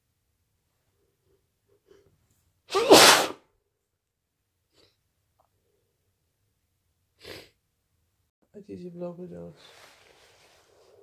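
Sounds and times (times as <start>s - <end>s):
person sneezing: 2.7s - 3.4s.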